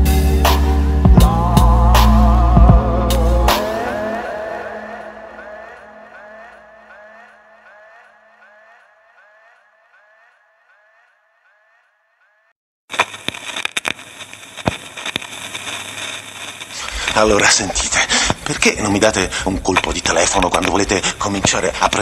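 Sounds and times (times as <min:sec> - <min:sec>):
record crackling: 0:12.9 - 0:22.0.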